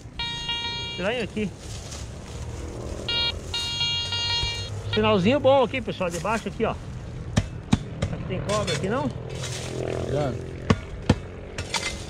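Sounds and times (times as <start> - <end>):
metal detector beeping: 0.0 - 1.5, 3.1 - 5.4.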